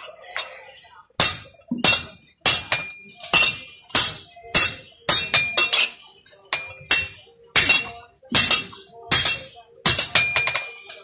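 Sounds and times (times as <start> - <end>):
hammer striking metal on anvil: 1.2 - 11.0.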